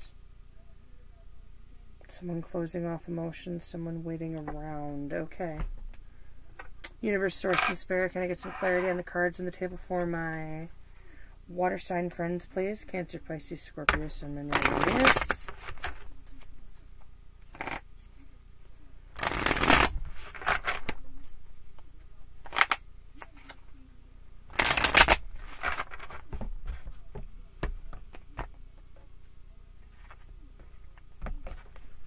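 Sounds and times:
cards riffle shuffled: 0:14.5 - 0:16.5, 0:17.5 - 0:17.8, 0:19.2 - 0:21.0, 0:21.8 - 0:23.6, 0:24.5 - 0:26.4
cards tapping and sliding: 0:17.5 - 0:17.8, 0:19.2 - 0:21.0, 0:21.8 - 0:23.6, 0:24.6 - 0:28.5.

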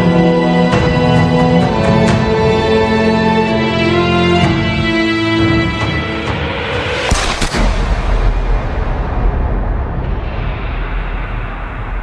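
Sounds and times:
loud low rumble: 0:07.1 - 0:12.0.

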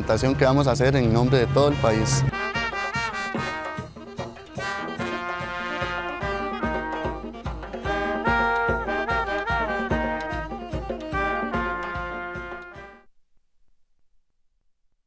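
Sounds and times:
steady drum beat: 0:00.1 - 0:13.0
brass band melody: 0:00.1 - 0:13.1.

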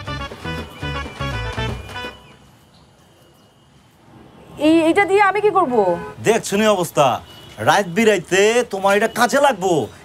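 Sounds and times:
music: 0:00.0 - 0:02.4
faint steady background noise: 0:02.0 - 0:10.0.

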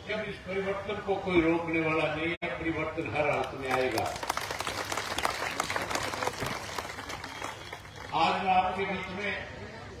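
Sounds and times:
large crowd applauding: 0:03.3 - 0:08.5.

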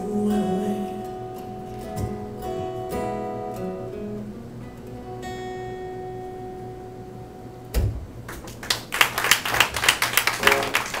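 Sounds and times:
audience clapping: 0:08.2 - 0:11.0.

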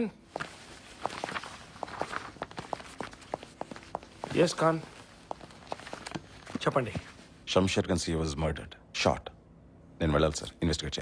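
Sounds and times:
footsteps on tiled floor: 0:00.3 - 0:07.3.

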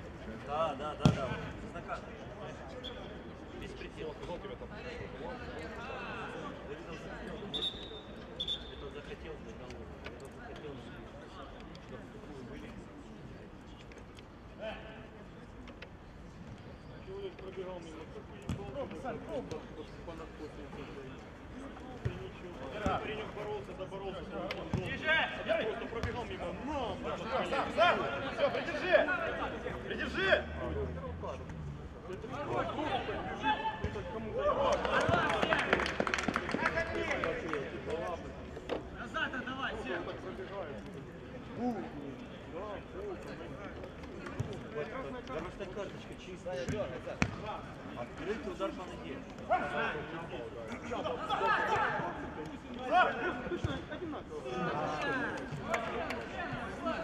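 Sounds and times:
outdoor background noise: 0:00.0 - 0:57.0
football kicked on artificial turf: 0:01.0 - 0:01.4.

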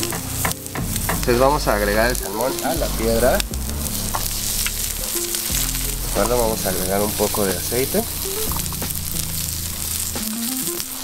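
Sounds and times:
food sizzling on a grill: 0:00.0 - 0:11.0.

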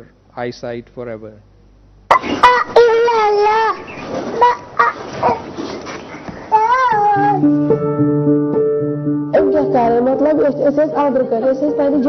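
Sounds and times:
child's high-pitched wavering calls: 0:02.1 - 0:05.4, 0:06.5 - 0:07.5.

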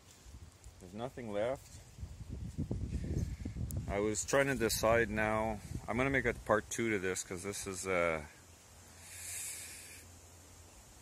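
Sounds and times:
person exhaling: 0:08.9 - 0:10.1.

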